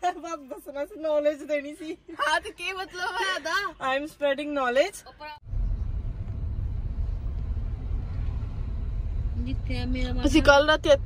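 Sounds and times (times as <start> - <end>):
car engine and road noise: 4.9 - 11.0.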